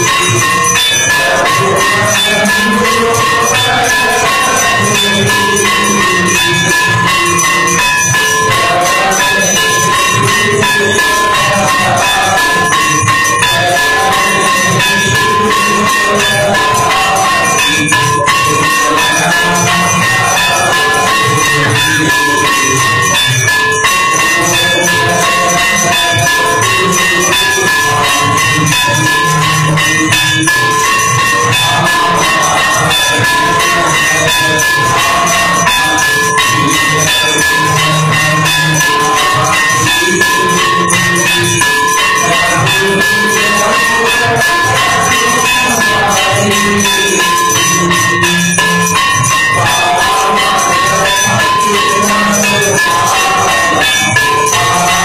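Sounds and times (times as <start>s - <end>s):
bells ringing: 0.0s - 55.0s
cymbal and drum percussion: 0.0s - 55.0s.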